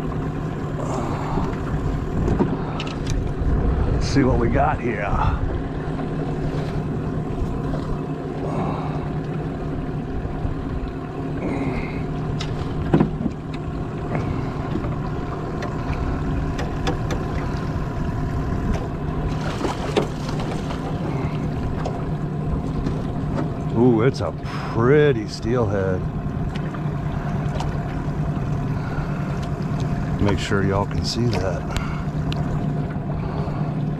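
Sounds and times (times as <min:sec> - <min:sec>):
outboard motor humming: 0:00.0 - 0:33.9
knocks on boat: 0:02.2 - 0:02.9, 0:12.4 - 0:15.0, 0:16.5 - 0:17.5, 0:18.7 - 0:20.9.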